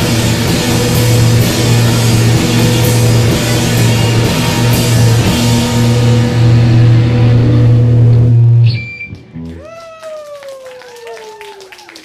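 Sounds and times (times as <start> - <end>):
rock band sustained chord: 0.0 - 9.6.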